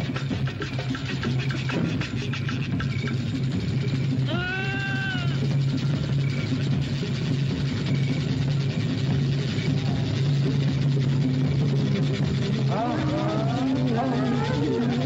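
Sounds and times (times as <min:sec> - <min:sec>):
steady low drone: 0:00.0 - 0:15.0
voice wailing upward: 0:04.3 - 0:05.4.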